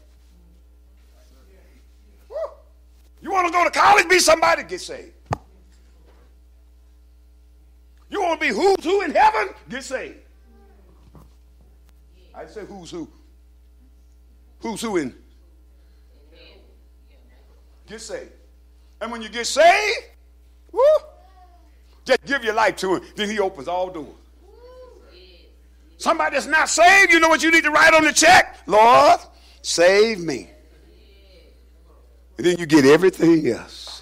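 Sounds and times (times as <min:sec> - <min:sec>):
low electrical hum: 0:00.0 - 0:34.0
preacher speaking: 0:03.2 - 0:05.2, 0:08.1 - 0:10.2, 0:12.4 - 0:13.2, 0:14.6 - 0:15.2, 0:17.9 - 0:18.4, 0:19.0 - 0:20.2, 0:22.0 - 0:24.2, 0:26.0 - 0:30.5, 0:32.4 - 0:33.9.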